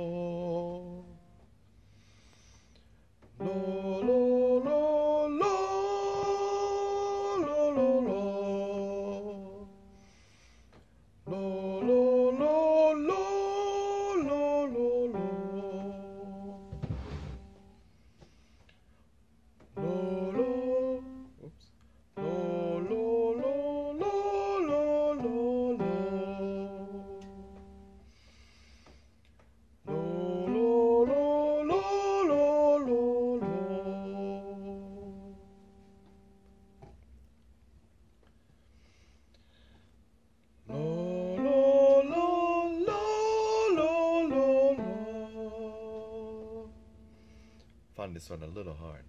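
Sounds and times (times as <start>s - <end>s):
man singing vocal scale: 0.0s - 1.4s, 3.4s - 10.0s, 11.2s - 17.5s, 19.7s - 27.9s, 29.9s - 35.6s, 40.6s - 47.2s
electric keyboard notes: 3.4s - 10.1s, 11.3s - 17.8s, 19.8s - 21.4s, 22.2s - 28.1s, 29.9s - 37.1s, 40.7s - 47.6s.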